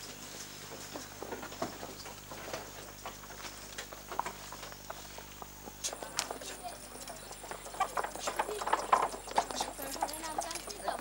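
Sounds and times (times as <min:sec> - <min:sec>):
horse hooves clip-clopping: 0:00.0 - 0:11.0.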